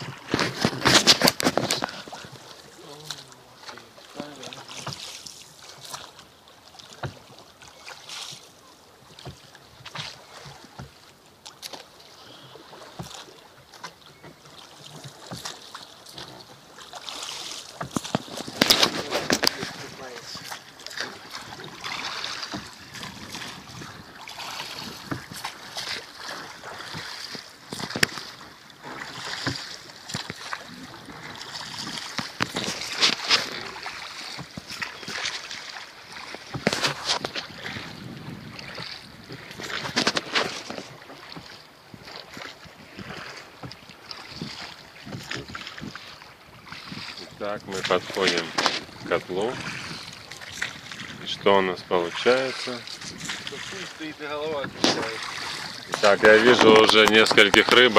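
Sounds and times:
water washing: 0:00.0 - 0:08.5, 0:09.1 - 0:57.9
oars splashing in water: 0:00.0 - 0:57.9
wind: 0:00.0 - 0:57.9
oars knocking in tholes: 0:54.6 - 0:57.9.

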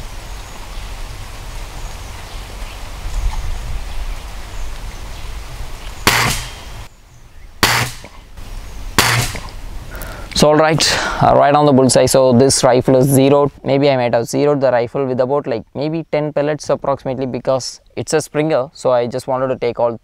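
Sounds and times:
wind rumble on microphone: 0:00.0 - 0:10.0
air rifle shots: 0:06.0 - 0:06.9, 0:07.6 - 0:08.3, 0:09.0 - 0:09.6.

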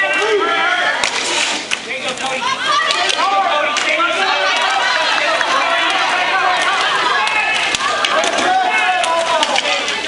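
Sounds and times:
many voices shouting: 0:00.0 - 0:01.3, 0:02.4 - 0:10.0.

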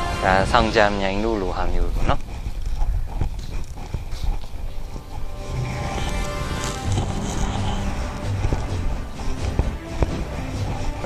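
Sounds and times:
footsteps on hard path: 0:01.1 - 0:11.0.

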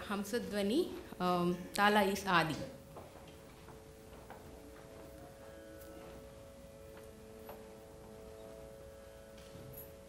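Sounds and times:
electronic drone of held tones: 0:00.9 - 0:10.0.

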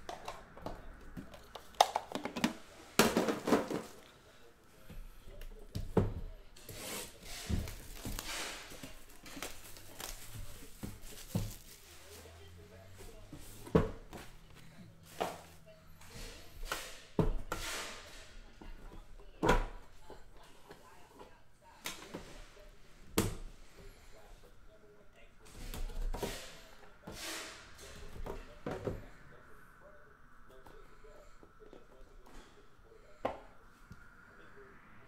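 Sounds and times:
plastic wrap tearing and crinkling: 0:09.0 - 0:11.9.

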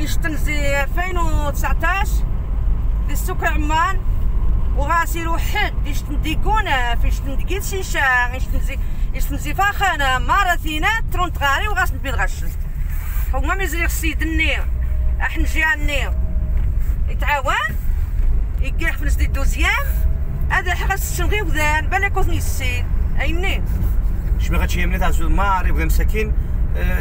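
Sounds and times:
car cabin low rumble: 0:00.0 - 0:27.0.

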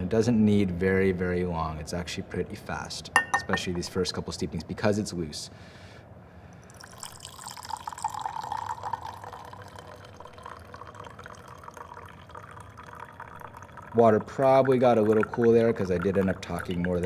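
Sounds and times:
tea pouring into glass pitcher: 0:06.6 - 0:17.0.

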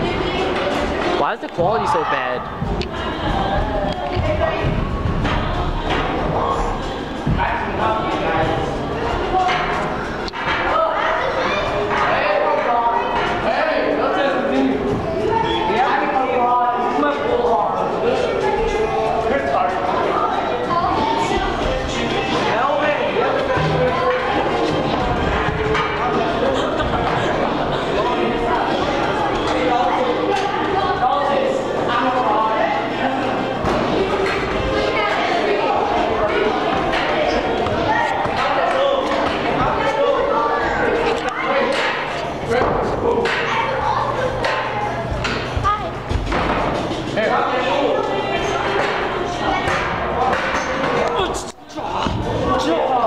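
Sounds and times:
indistinct chatter in echoing hall: 0:00.0 - 0:53.0.

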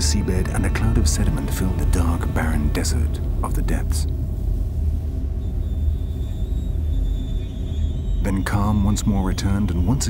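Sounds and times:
deep steady rumble: 0:00.0 - 0:10.0
faint high whine: 0:00.0 - 0:10.0.

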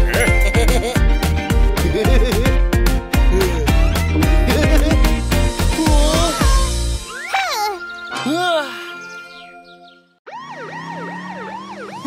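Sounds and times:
cartoon siren sweeping: 0:10.3 - 0:12.0.

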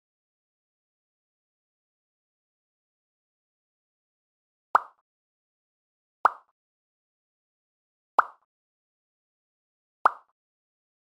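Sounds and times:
quick pop sound effects: 0:04.8 - 0:05.0, 0:06.3 - 0:06.5, 0:08.2 - 0:08.4, 0:10.1 - 0:10.3.

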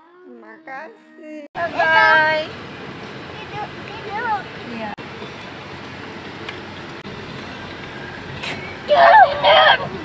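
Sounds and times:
child calling out loudly: 0:08.9 - 0:10.0.

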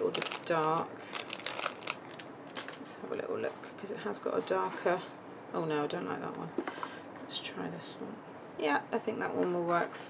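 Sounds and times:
plastic packet crinkling: 0:00.0 - 0:03.0.

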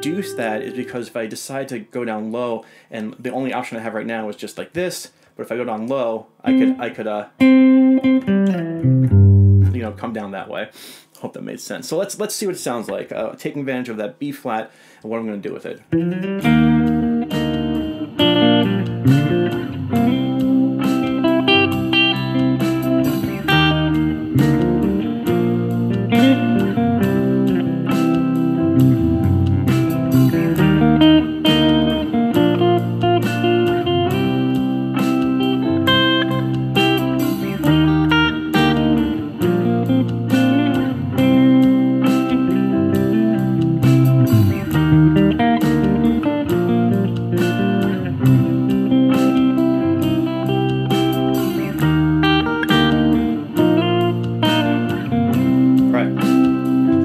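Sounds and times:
electric guitar solo: 0:00.0 - 0:01.0, 0:06.5 - 0:09.9, 0:15.9 - 0:57.0
backing track with steady beat: 0:15.9 - 0:57.0.

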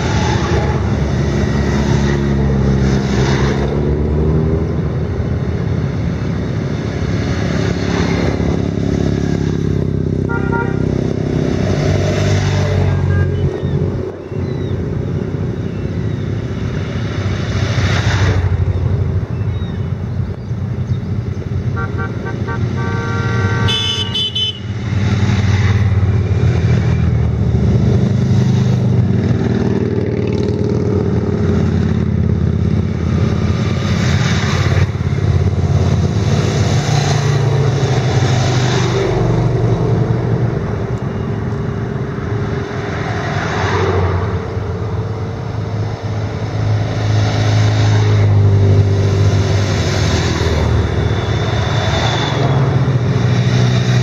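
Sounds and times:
motorcycles riding past: 0:00.0 - 0:54.0
horn toot: 0:10.2 - 0:11.0, 0:21.7 - 0:24.8.

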